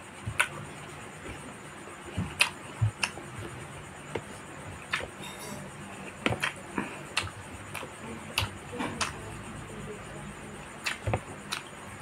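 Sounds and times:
chewing smacks and clicks: 0:00.3 - 0:00.6, 0:02.2 - 0:03.3, 0:06.2 - 0:09.4, 0:10.8 - 0:11.8.

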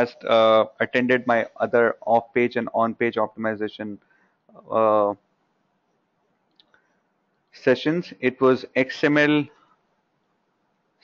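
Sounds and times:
man saying uh: 0:00.0 - 0:04.0, 0:04.6 - 0:05.2
room hiss: 0:00.0 - 0:06.2, 0:07.1 - 0:11.0.

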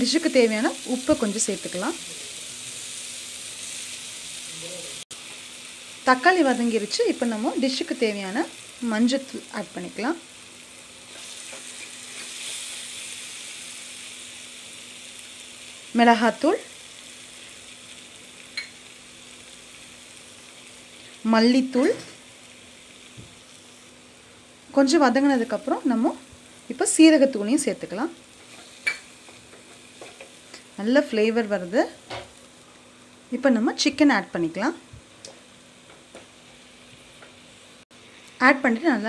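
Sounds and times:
food sizzling in oil: 0:00.0 - 0:39.0.

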